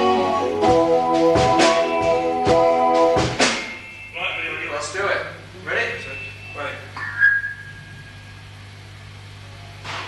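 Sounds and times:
amplifier electrical hum: 0:00.0 - 0:10.0
high ringing tone: 0:03.6 - 0:05.0, 0:05.7 - 0:08.8.

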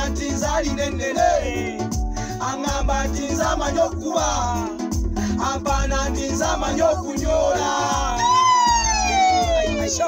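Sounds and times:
pop backing track with bass: 0:00.0 - 0:10.0.

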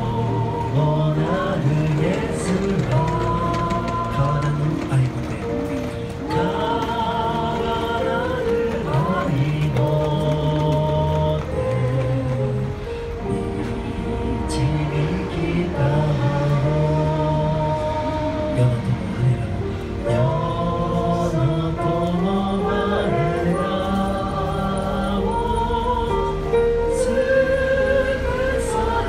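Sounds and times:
small group singing a hymn: 0:00.0 - 0:29.0.

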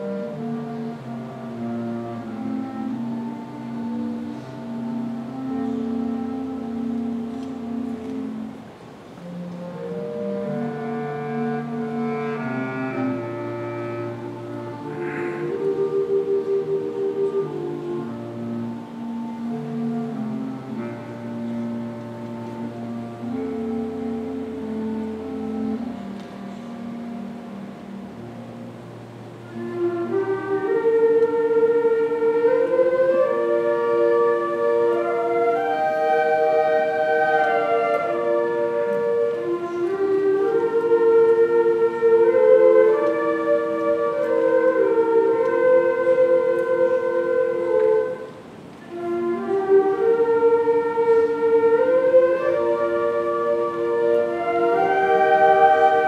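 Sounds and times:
concert band sustained notes: 0:00.0 - 0:56.0.

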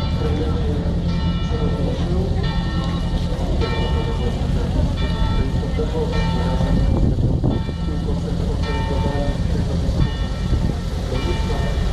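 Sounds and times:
church bell ringing: 0:00.0 - 0:11.9
crowd murmur: 0:00.0 - 0:11.9
wind rumbling on microphone: 0:02.0 - 0:11.9.

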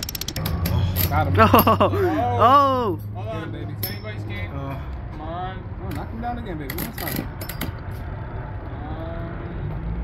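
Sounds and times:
spinning tops whirring: 0:00.0 - 0:01.7
metal tops clinking: 0:00.0 - 0:02.0, 0:03.8 - 0:04.2.

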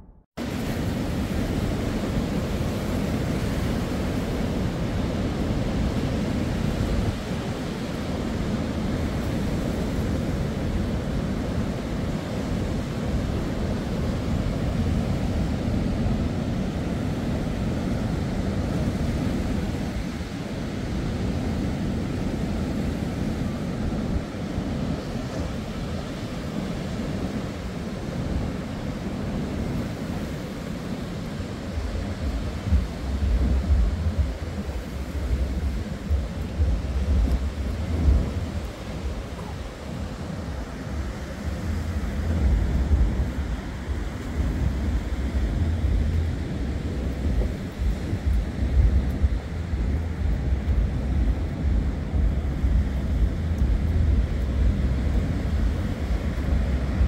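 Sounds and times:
wind buffeting microphone: 0:00.0 - 0:57.0
sea surf breaking on a seawall: 0:00.4 - 0:57.0.

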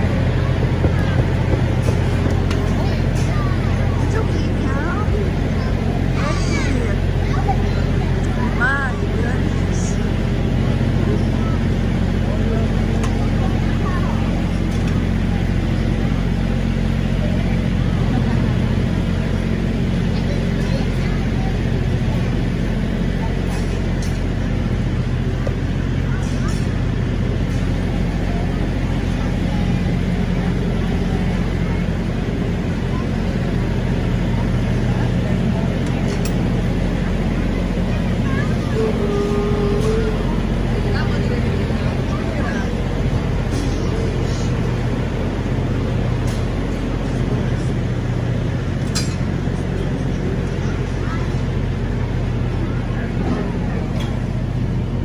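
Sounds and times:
faint voices: 0:00.0 - 0:55.0
low machine hum: 0:00.0 - 0:55.0.

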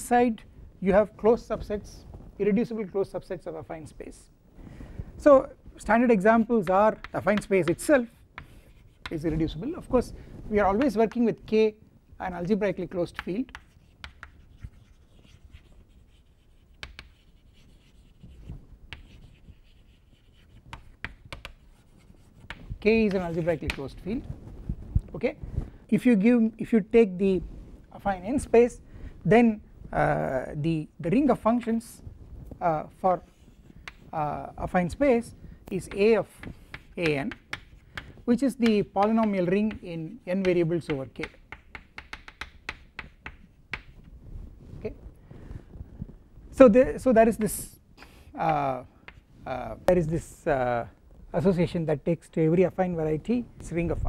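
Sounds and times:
chalk tapping on board: 0:06.6 - 0:09.3, 0:10.7 - 0:11.3, 0:13.1 - 0:24.0, 0:33.8 - 0:34.1, 0:35.8 - 0:44.0, 0:48.5 - 0:49.2
chalk scratching on chalkboard: 0:06.9 - 0:09.6, 0:13.2 - 0:23.8, 0:35.8 - 0:43.9.

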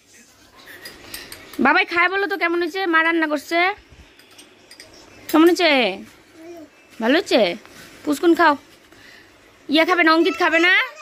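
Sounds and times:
spoons clinking against bowls: 0:00.6 - 0:02.4, 0:04.0 - 0:06.0.

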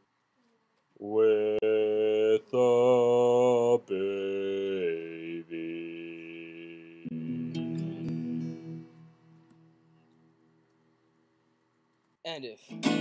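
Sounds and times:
person singing long held notes: 0:01.0 - 0:09.3.

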